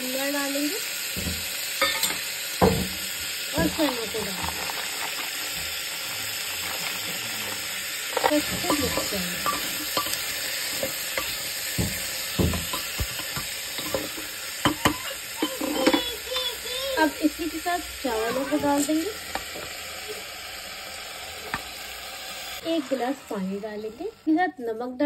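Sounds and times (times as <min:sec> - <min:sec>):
vegetables sizzling in oil: 0:00.0 - 0:25.0
spatula knocking and scraping pot: 0:08.2 - 0:16.0.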